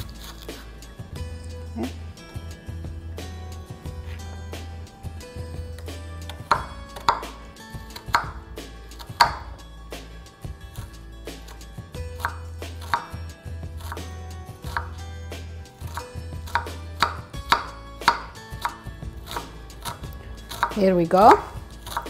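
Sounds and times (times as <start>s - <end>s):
knife chopping on wooden board: 5.8s - 9.6s, 10.8s - 13.2s, 13.8s - 15.0s, 15.8s - 22.0s.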